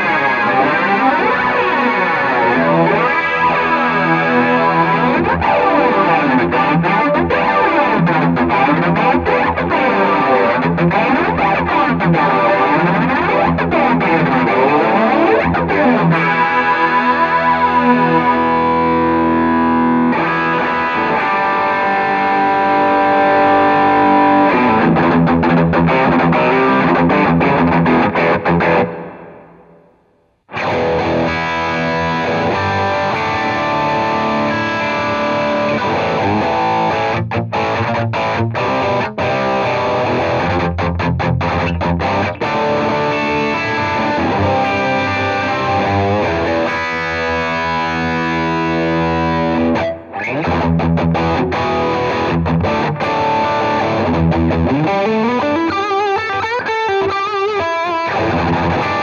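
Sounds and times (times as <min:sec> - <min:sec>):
distorted electric guitar: 0:00.0 - 0:59.0.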